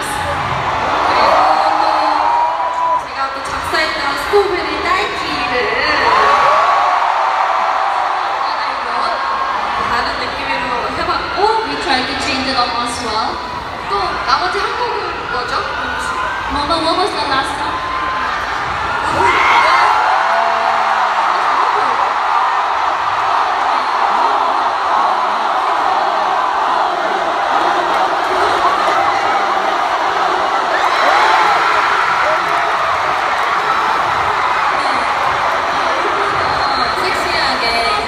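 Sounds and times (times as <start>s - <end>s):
crowd cheering and screaming: 0.0s - 38.0s.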